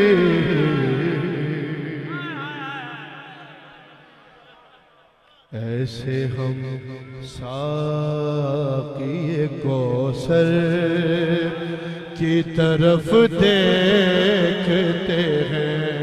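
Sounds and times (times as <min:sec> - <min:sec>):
man singing through sound system: 0:00.0 - 0:16.0.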